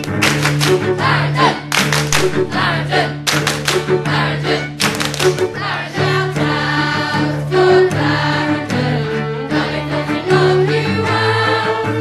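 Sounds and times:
instrumental accompaniment: 0.0 - 12.0
group singing in chorus: 0.8 - 12.0.

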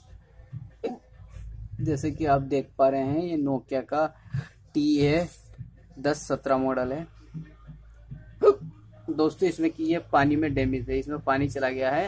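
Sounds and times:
low steady hum: 0.0 - 12.0
man hiccup-like vocal sound: 8.4 - 8.7.

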